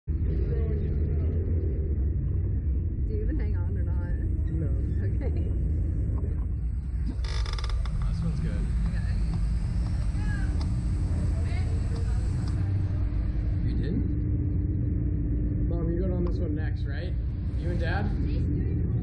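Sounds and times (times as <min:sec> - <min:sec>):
faint voices: 0:00.2 - 0:14.1
ride machinery rumbling: 0:00.2 - 0:19.0.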